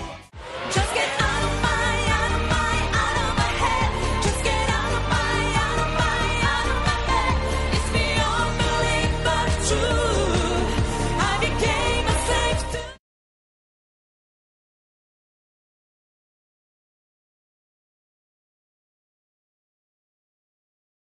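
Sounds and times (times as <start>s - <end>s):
woman singing pop song: 0.0s - 13.0s
steady dance beat: 0.4s - 12.9s.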